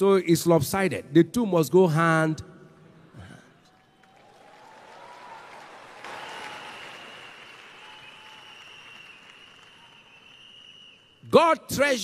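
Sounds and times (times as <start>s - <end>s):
congregation applauding: 3.7s - 11.2s.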